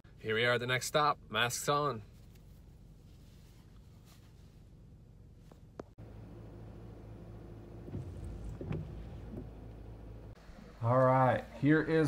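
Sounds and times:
car engine low hum: 0.1s - 12.0s.

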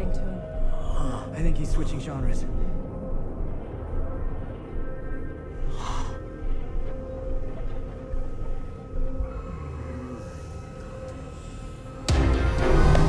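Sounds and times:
film score music drone: 0.0s - 13.0s.

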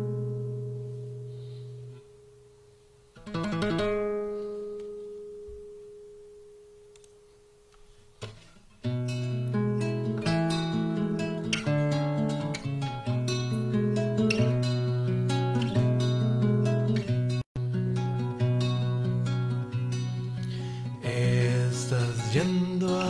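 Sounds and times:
fingerstyle acoustic guitar: 0.0s - 23.0s.

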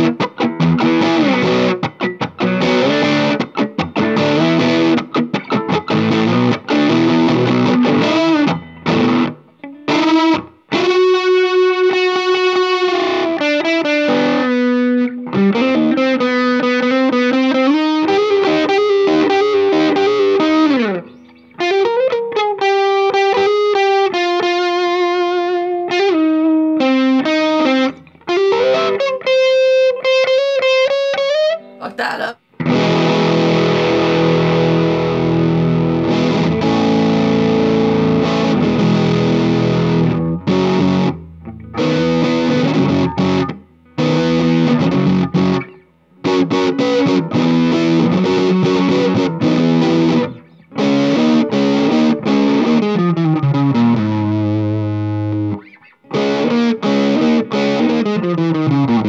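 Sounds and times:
electric guitar lead line: 0.0s - 59.0s
distorted guitar chord: 32.6s - 55.6s.

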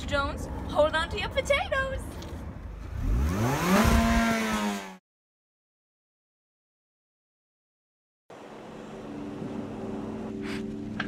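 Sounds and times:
car engine revving: 2.8s - 5.0s.

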